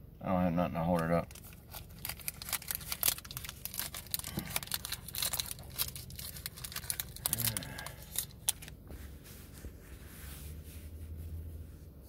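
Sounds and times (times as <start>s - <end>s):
foil wrapper crinkling and tearing: 1.0s - 8.8s.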